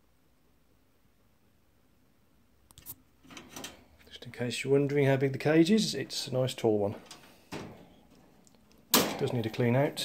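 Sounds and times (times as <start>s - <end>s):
handling noise: 6.9s - 9.8s.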